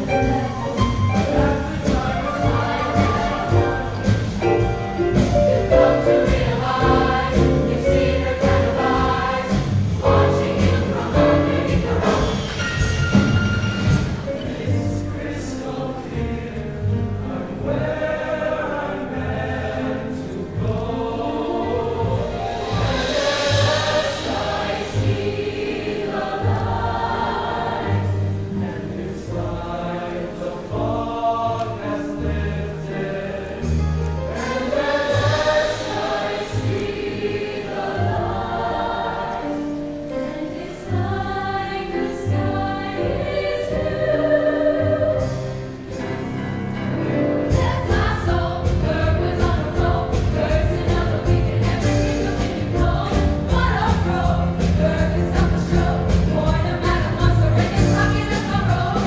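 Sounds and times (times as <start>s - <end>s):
choir singing: 0.0s - 59.0s.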